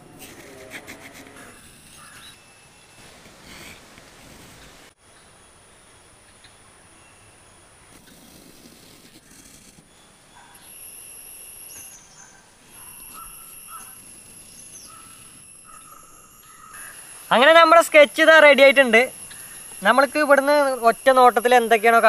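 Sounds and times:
high-pitched insect drone: 0.6s - 3.0s, 9.4s - 22.0s
bird chirps: 9.9s - 17.4s.

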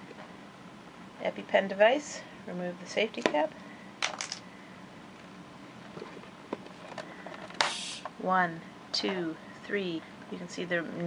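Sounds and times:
brief hiss: 7.6s - 8.1s.

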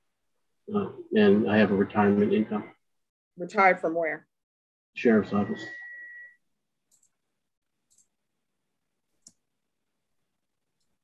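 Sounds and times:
faint clicks: 6.9s - 7.2s, 7.8s - 8.2s.

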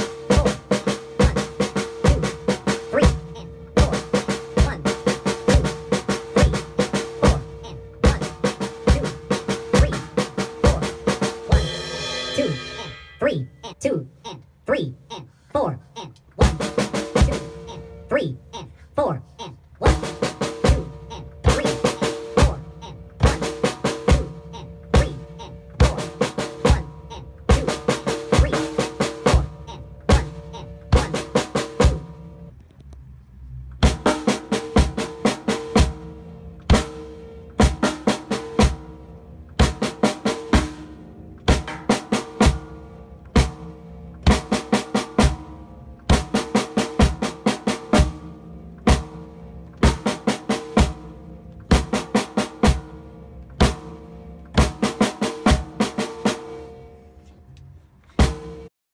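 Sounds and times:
snare and tom strokes: 0.0s - 13.3s, 16.4s - 17.7s, 19.8s - 32.1s, 58.1s - 58.7s.

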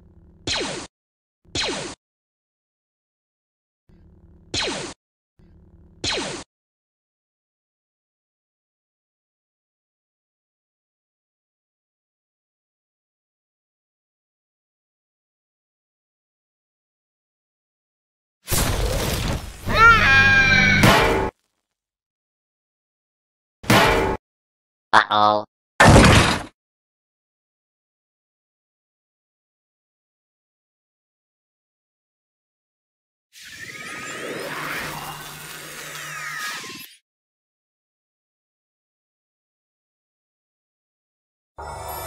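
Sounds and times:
blaster shot zaps: 0.5s - 0.9s, 1.5s - 2.0s, 6.0s - 6.4s.

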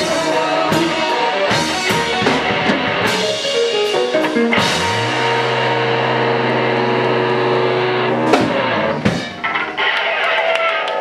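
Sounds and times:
rock band holding a chord: 0.0s - 9.9s.

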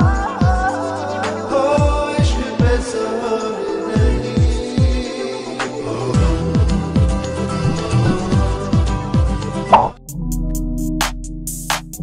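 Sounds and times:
background music with falling bass: 0.0s - 12.0s
backing track with ticking beat: 5.7s - 12.0s.

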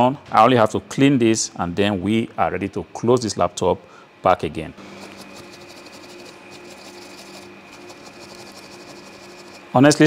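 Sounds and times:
steady low hum: 0.0s - 10.0s
brush scrubbing laptop: 4.9s - 9.8s.

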